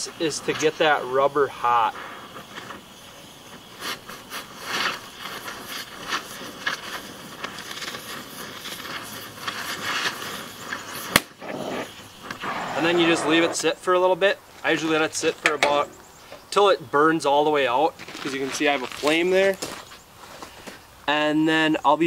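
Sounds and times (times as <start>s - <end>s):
torch flame hissing: 0.0s - 16.6s
burning rubber crackling: 0.0s - 21.2s
sharp snap: 11.1s - 11.4s.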